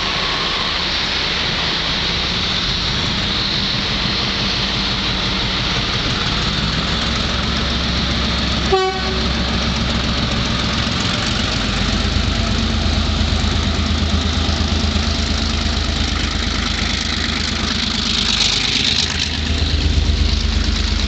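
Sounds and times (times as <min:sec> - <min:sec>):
diesel locomotive working under power: 0:00.0 - 0:21.0
train horn toot: 0:08.6 - 0:09.5.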